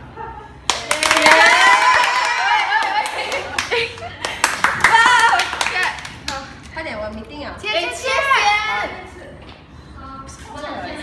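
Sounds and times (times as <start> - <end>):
girls clapping: 0.6 - 6.8
girls shouting excitedly: 7.7 - 9.0.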